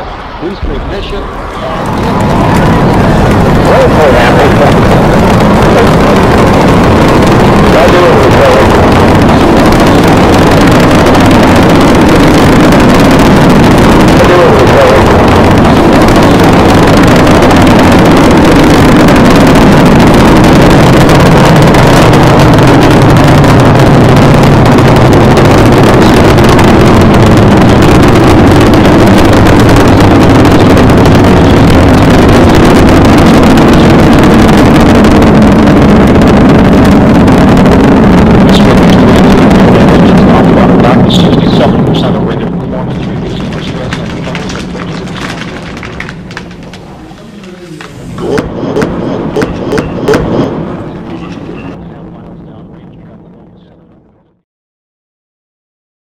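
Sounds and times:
rocket engines roaring: 0:00.0 - 0:54.3.

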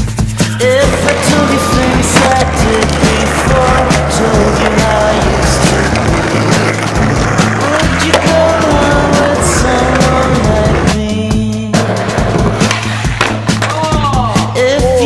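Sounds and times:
loud music: 0:00.0 - 0:15.0
skateboard wheels rolling: 0:00.6 - 0:11.1
skateboard clacks: 0:00.7 - 0:11.1, 0:11.7 - 0:14.0.

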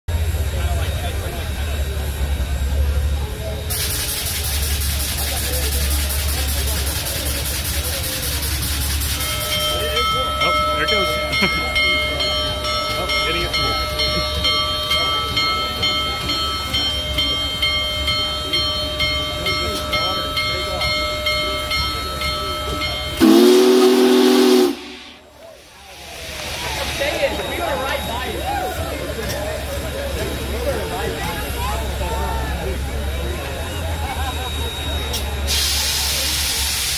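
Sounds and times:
crowd murmuring: 0:00.1 - 0:36.9
loud steam hiss: 0:03.4 - 0:11.0, 0:22.8 - 0:28.3, 0:34.6 - 0:36.9
crowd cheering: 0:22.7 - 0:35.5
deep steam whistle blast: 0:23.2 - 0:25.3.

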